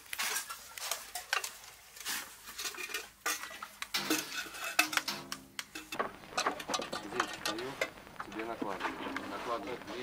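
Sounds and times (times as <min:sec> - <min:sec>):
metal ladle scraping steel pot: 0:02.6 - 0:07.9.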